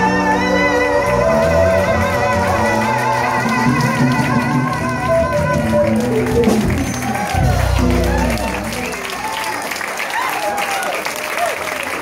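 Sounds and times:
guitar and bass playing: 0.0 - 9.3.

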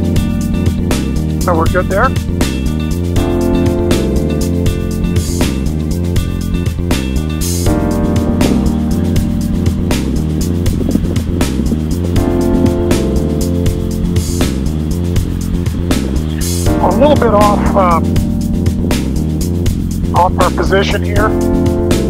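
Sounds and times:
background music with steady beat: 0.0 - 22.0.

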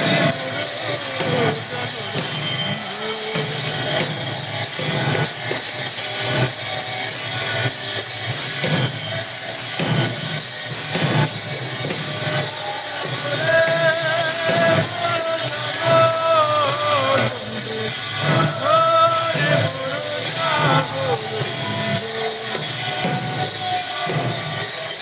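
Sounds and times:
drums beating: 0.0 - 25.0
metal hand percussion jingling: 0.0 - 25.0.

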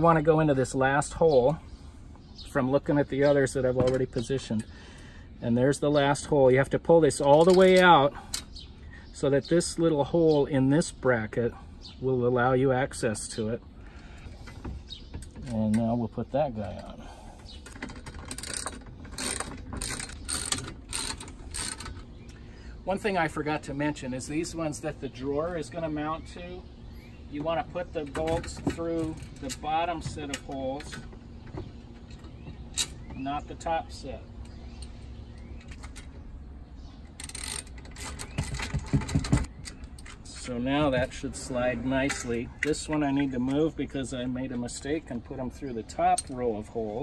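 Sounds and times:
ratchet wrench clicking: 18.2 - 22.0, 37.2 - 38.1.

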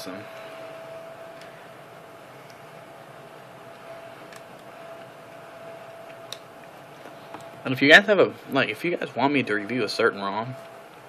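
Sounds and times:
thin steady whine: 0.0 - 11.0.

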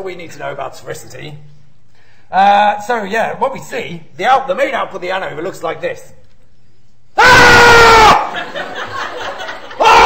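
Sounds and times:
loud scream: 7.2 - 8.4, 9.7 - 10.0.

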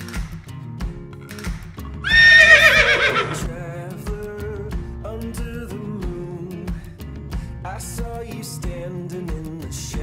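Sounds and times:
quiet guitar music: 0.0 - 2.1, 3.3 - 10.0
horse whinny: 2.0 - 3.5.

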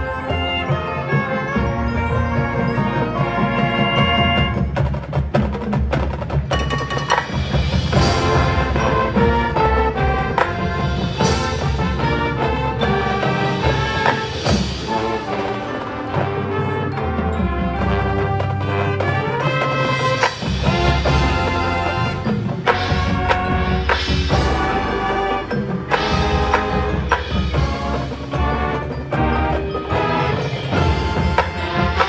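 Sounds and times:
marching band playing: 0.0 - 32.0
sharp percussion hits: 0.0 - 32.0.

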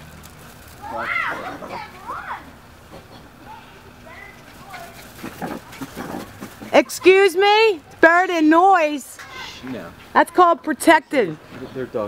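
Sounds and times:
low outdoor background: 0.0 - 12.0.

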